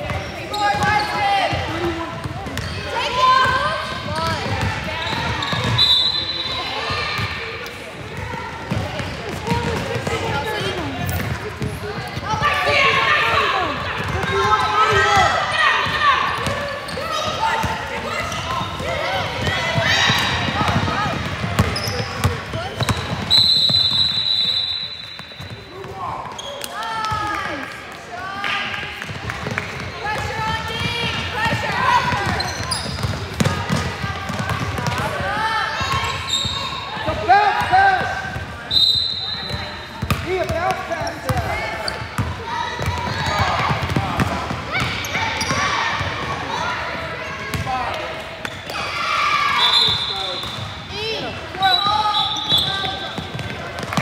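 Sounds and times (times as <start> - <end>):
referee whistle: 5.0 - 6.8, 22.7 - 25.5, 38.7 - 39.8, 49.5 - 50.7, 51.6 - 53.2.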